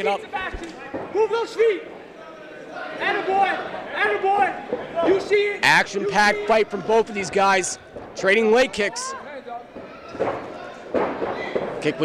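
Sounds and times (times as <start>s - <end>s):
crowd noise in a hall: 0.0s - 12.0s.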